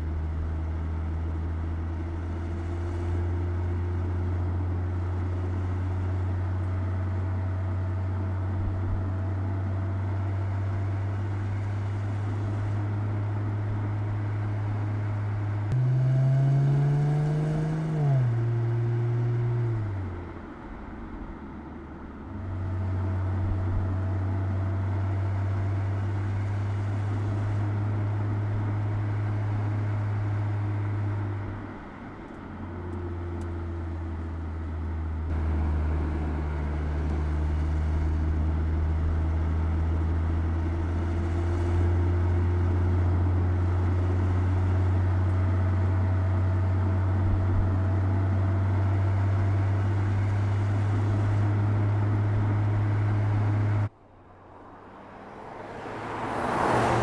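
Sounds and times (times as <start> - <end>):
car engine driving: 0.0 - 57.0.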